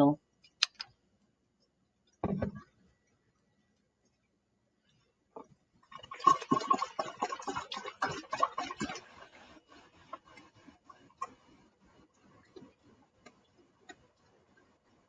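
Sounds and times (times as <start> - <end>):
water drips: 5.8 - 9.4
water pouring into plastic bottle: 5.9 - 10.6.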